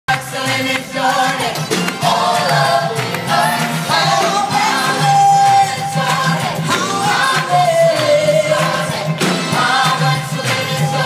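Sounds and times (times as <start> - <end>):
band accompaniment: 0.1 - 11.0
gospel choir singing: 0.1 - 11.0.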